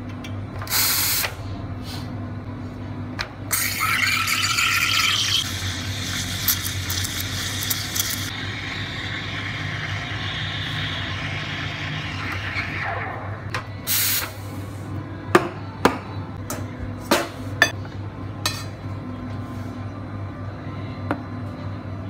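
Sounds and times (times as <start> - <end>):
low machine hum: 1.3 - 22.0.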